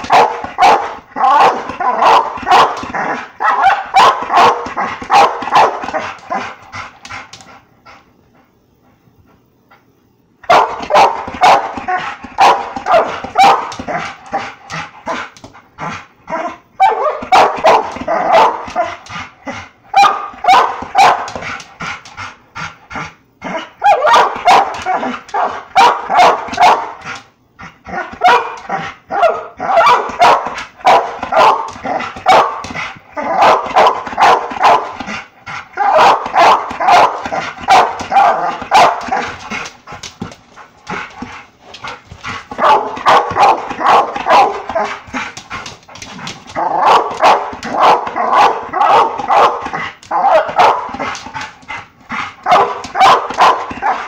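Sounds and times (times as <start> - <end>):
dog barking rapidly: 0.0 - 6.4, 10.5 - 14.0, 16.8 - 18.9, 19.9 - 21.4, 23.8 - 27.0, 28.1 - 32.7, 33.3 - 35.0, 35.8 - 39.4, 42.6 - 45.0, 46.6 - 51.1, 52.4 - 54.0.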